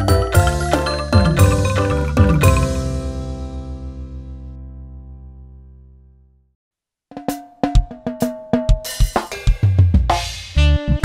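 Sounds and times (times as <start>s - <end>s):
drum kit beat: 0.0s - 3.5s, 7.1s - 11.0s
keyboard chords: 0.0s - 6.3s.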